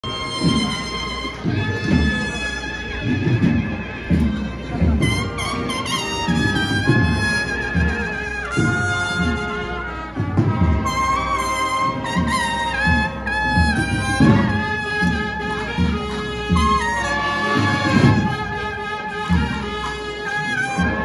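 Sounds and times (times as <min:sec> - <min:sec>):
cornets playing melody: 0:00.0 - 0:21.0
drums beating: 0:00.0 - 0:21.0.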